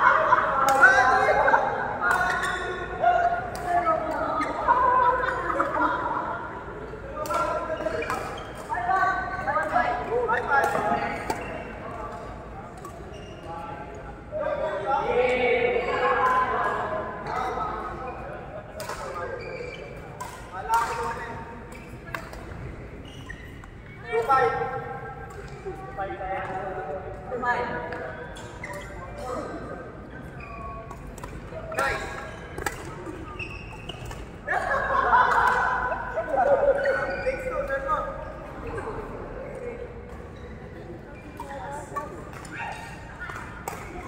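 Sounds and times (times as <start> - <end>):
voices talking in echoing hall: 0.0 - 44.0
rackets hitting shuttlecock: 30.9 - 33.2, 41.3 - 44.0.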